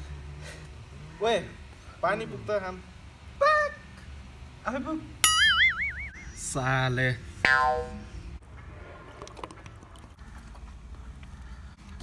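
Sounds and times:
low hum: 5.2s - 11.9s.

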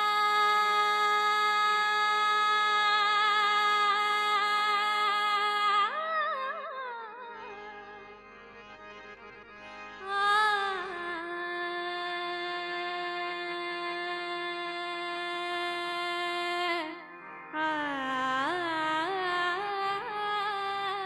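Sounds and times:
woman singing classical vocals: 0.0s - 7.6s, 10.0s - 21.0s
harmonium: 0.0s - 21.0s.

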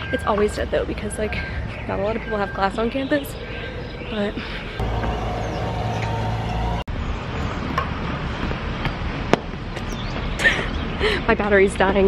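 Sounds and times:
street noise: 0.0s - 12.0s
vehicle engine humming: 4.8s - 6.9s.

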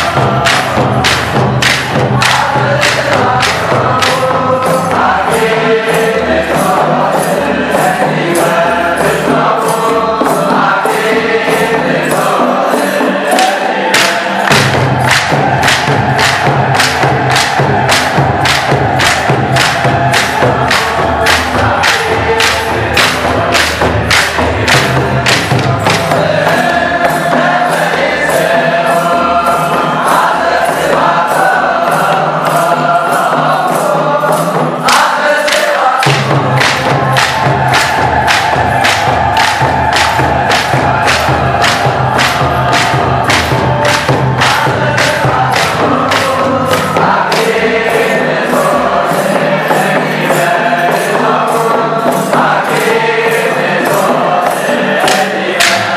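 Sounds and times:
group singing: 0.0s - 55.9s
sharp percussion beat: 0.0s - 55.9s.

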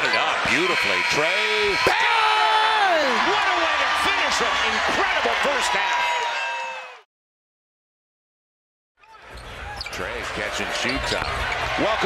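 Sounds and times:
arena crowd noise: 0.0s - 7.1s, 9.0s - 12.0s.

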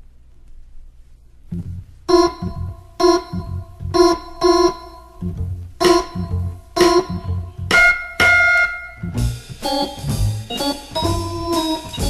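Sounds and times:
bass notes: 1.4s - 12.0s
jazz organ chords: 1.5s - 12.0s.

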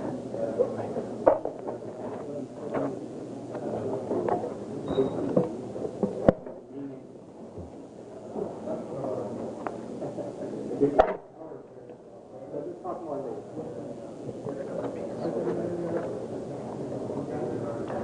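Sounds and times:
indistinct low talking: 0.0s - 18.0s.

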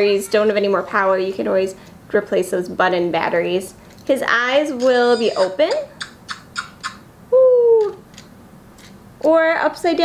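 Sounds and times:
toy cooing call: 4.8s - 7.0s.

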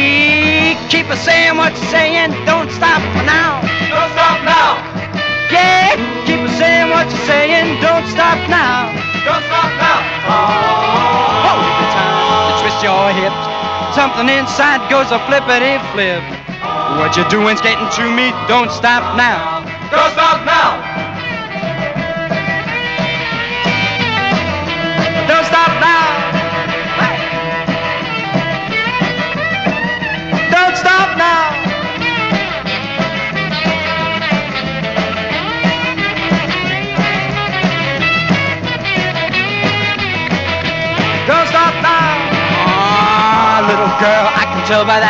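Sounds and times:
rock and roll band playing: 0.0s - 45.0s
lead instrument bending notes: 5.5s - 9.3s, 10.0s - 19.9s, 39.3s - 45.0s
long held note rising in pitch: 10.5s - 19.2s.

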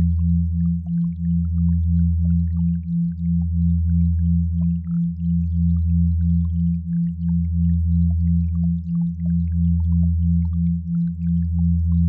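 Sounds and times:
deep steady hum: 0.0s - 12.0s
pulsing low sine tone: 0.0s - 12.0s.

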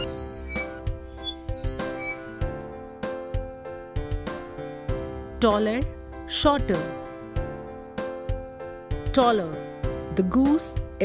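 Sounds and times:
high squeaky notes: 0.0s - 2.6s.

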